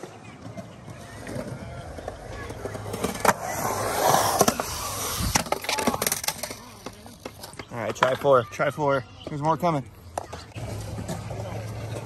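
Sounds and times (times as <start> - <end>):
skateboard clacking on concrete: 0.0 - 12.0
skateboard wheels rolling on concrete: 0.0 - 12.0.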